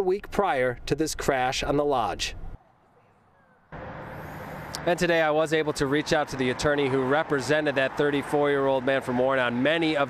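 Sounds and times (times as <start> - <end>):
freeway traffic hiss: 3.8 - 10.0.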